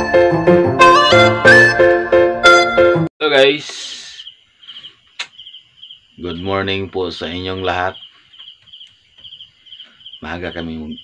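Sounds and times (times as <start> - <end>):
crickets chirping: 3.4 - 11.0
sharp click: 5.2 - 5.4.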